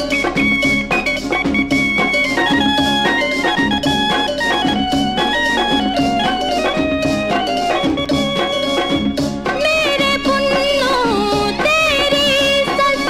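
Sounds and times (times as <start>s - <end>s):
melodic lead line: 0.0s - 13.0s
steady drum beat: 0.0s - 13.0s.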